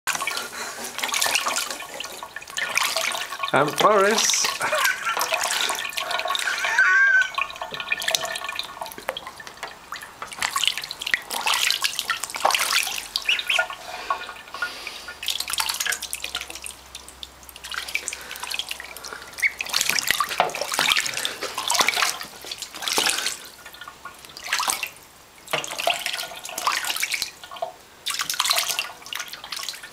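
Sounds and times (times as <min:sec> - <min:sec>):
duckling splashing in sink water: 0:00.1 - 0:29.9.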